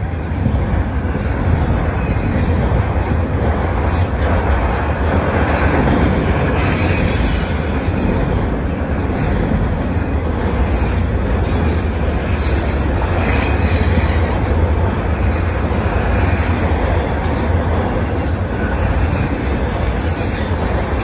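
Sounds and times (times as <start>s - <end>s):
freight train wheels rumbling on rails: 0.0s - 21.0s.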